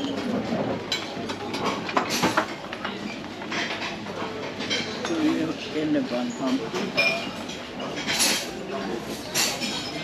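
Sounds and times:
clinking dishes and cutlery: 0.0 - 10.0.

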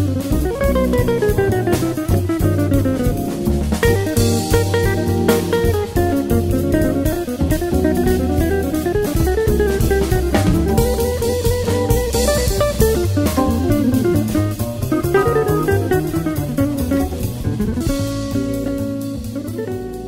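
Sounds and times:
bass: 0.0 - 20.0
drum kit with cymbals: 0.0 - 20.0
jazz guitar runs: 0.0 - 20.0.

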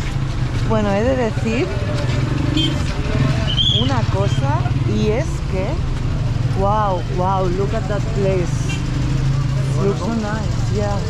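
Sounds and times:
motorcycle passing: 0.0 - 11.0
traffic rumble: 0.0 - 11.0
people's voices: 0.6 - 11.0.

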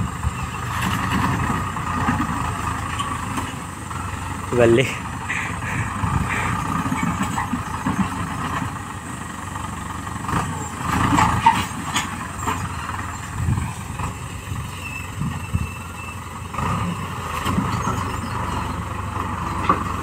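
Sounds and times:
tractor engine running: 0.0 - 20.0
knocks and clatters: 10.4 - 12.8.

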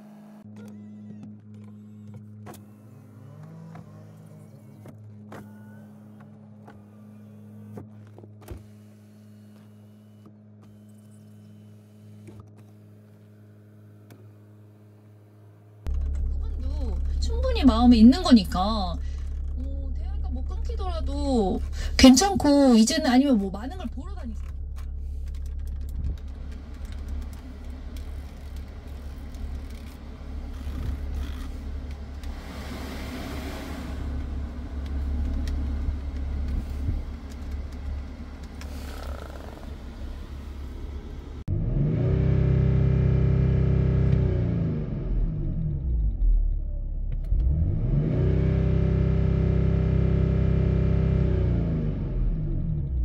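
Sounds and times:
engine revving: 2.0 - 8.0, 8.6 - 53.0
diesel engine idling: 15.8 - 41.5.

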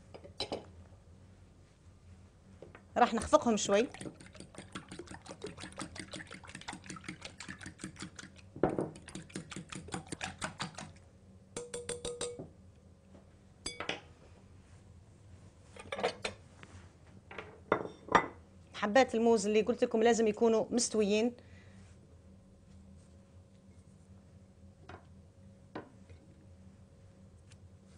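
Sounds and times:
whisk ticking against glass bowl: 3.1 - 8.4, 9.0 - 11.0, 11.6 - 12.4.

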